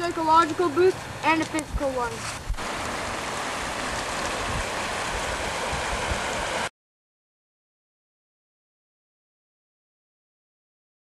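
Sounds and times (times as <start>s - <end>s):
creek flowing over stones: 0.0s - 6.7s.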